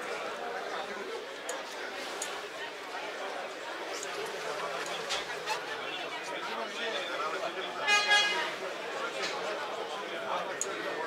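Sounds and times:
crowd chatter in a hall: 0.0s - 11.0s
horn sounding: 7.8s - 8.6s.

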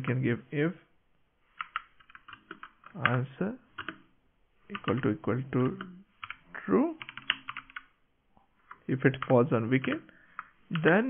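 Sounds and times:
typing on a keyboard: 1.6s - 3.1s, 3.8s - 4.0s, 5.7s - 6.4s, 7.0s - 7.9s, 8.7s - 10.8s.

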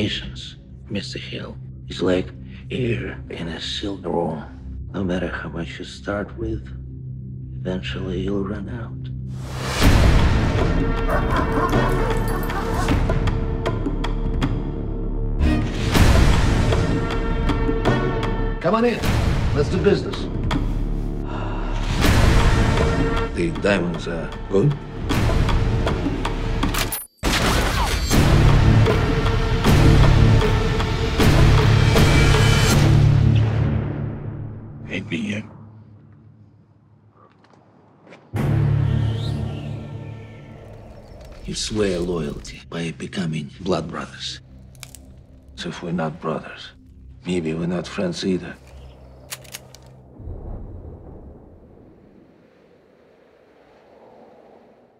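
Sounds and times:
dramatic music: 9.2s - 35.9s
wind-like rushing drone: 48.7s - 54.9s
deep low boom: 50.1s - 52.5s.

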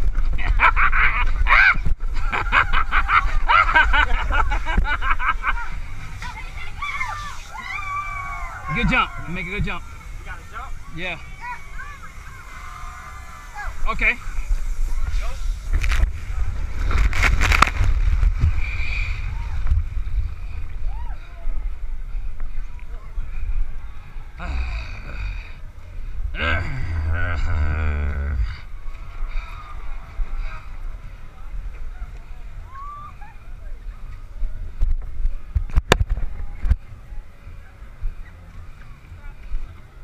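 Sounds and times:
people's voices: 0.0s - 40.0s.

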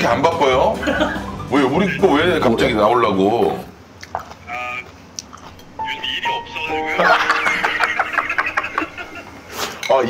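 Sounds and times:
men laughing: 0.7s - 1.9s, 6.6s - 9.8s.

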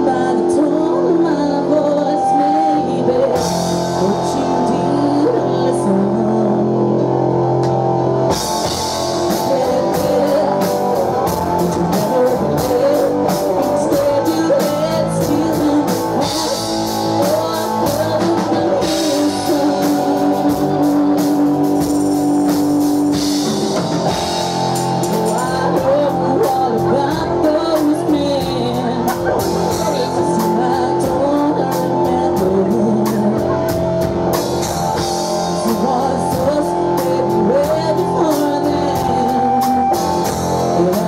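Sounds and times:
woman singing lead: 0.0s - 7.5s, 8.3s - 41.0s
bass guitar: 0.0s - 41.0s
drum kit: 0.0s - 41.0s
electric guitar: 0.0s - 41.0s.

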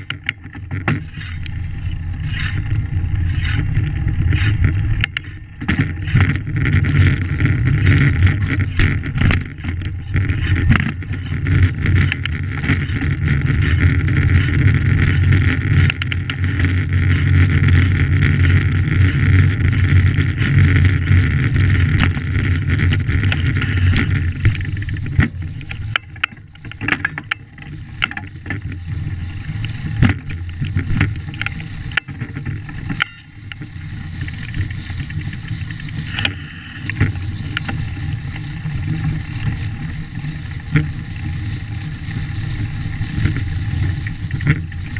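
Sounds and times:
rattles and knocks from rough ground: 0.0s - 44.9s
vehicle riding drone: 0.0s - 44.9s.

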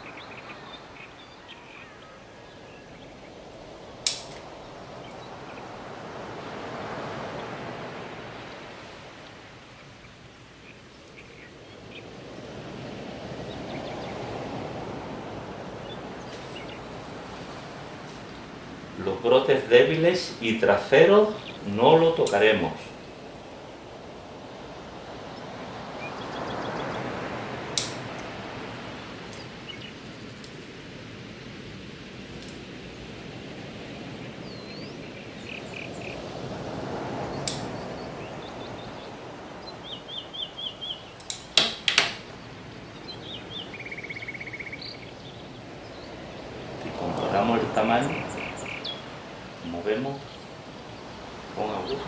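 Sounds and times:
birds chirping: 0.0s - 52.0s.

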